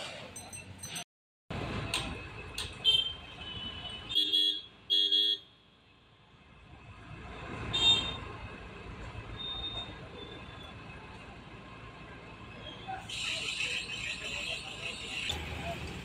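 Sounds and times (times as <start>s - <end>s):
street traffic: 0.0s - 16.0s.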